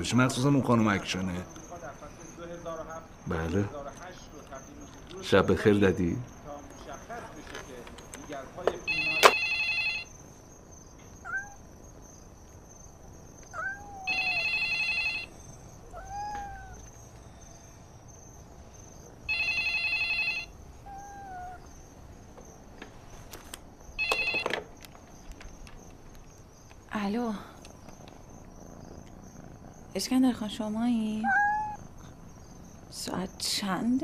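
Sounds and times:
telephone ringing in warbling bursts: 8.9s - 10.1s, 14.1s - 15.3s, 19.3s - 20.5s, 24.0s - 24.6s
cat meowing: 11.2s - 11.6s, 13.4s - 16.9s, 19.3s - 21.7s, 31.1s - 32.4s.

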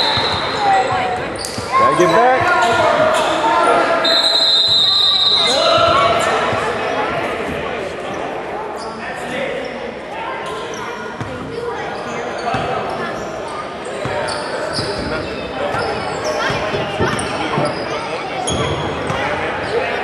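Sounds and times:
players shouting in gymnasium: 0.0s - 20.0s
referee's whistle blast: 4.0s - 6.0s.

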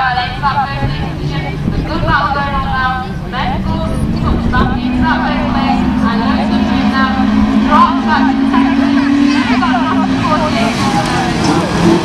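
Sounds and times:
race car engines revving: 0.0s - 12.0s
voices: 0.0s - 12.0s.

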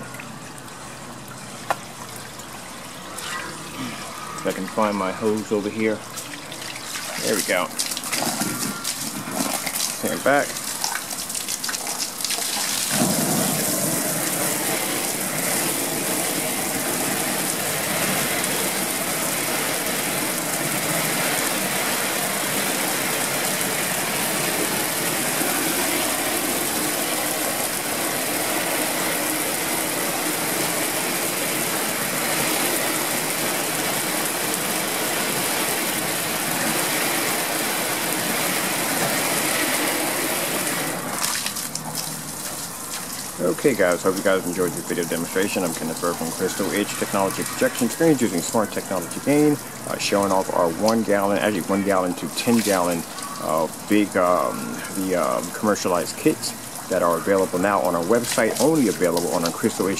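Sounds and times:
hose spraying water on screen: 1.6s - 59.9s.

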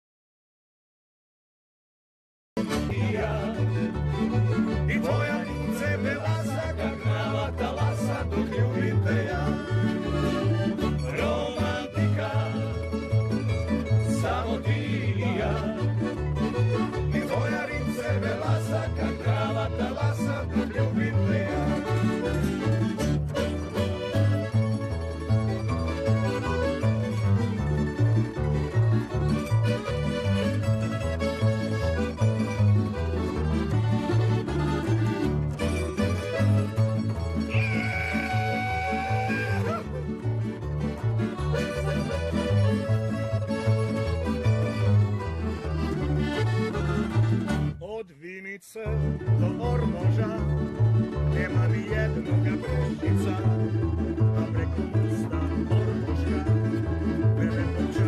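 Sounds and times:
plucked string melody: 2.6s - 47.8s, 48.8s - 58.0s
accordion: 2.6s - 58.0s
bass line: 2.6s - 58.0s.

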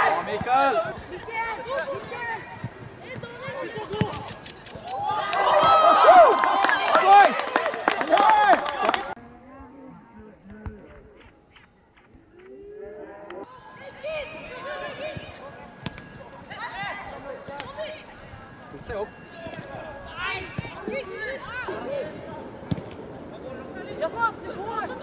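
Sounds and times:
young voices shouting: 4.9s - 9.2s, 13.2s - 22.6s.

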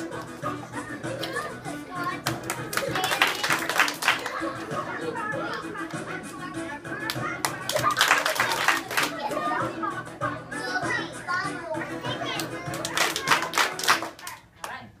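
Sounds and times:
music: 0.0s - 14.5s
children chattering: 0.5s - 13.5s
children clapping: 2.0s - 4.4s, 7.0s - 9.3s, 12.3s - 14.8s.

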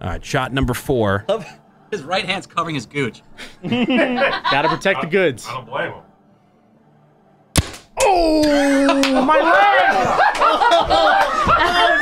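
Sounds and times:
paintball marker shot pop: 7.6s - 8.0s.

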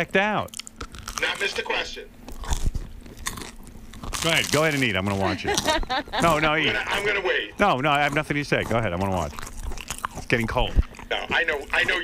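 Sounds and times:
chewing and mouth noises: 0.4s - 12.0s.

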